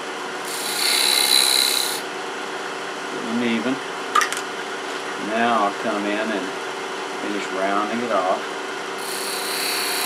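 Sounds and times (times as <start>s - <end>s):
lathe running: 0.4s - 2.0s, 9.0s - 10.0s
parting tool cutting wood: 0.4s - 2.0s, 9.0s - 10.0s.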